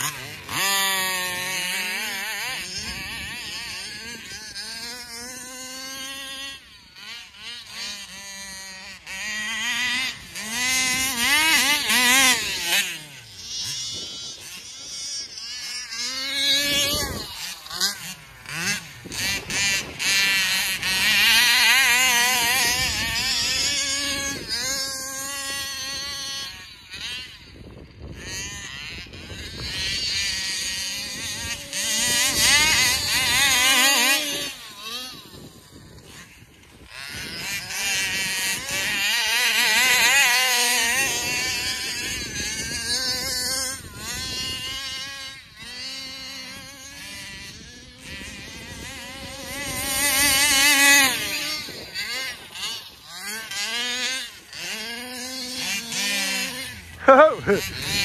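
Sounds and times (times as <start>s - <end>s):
rc car engines revving: 0.0s - 58.0s.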